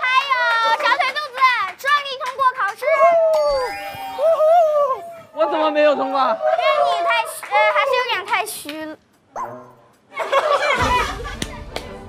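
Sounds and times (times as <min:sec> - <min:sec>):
people crying ooh: 0:03.2 - 0:05.3.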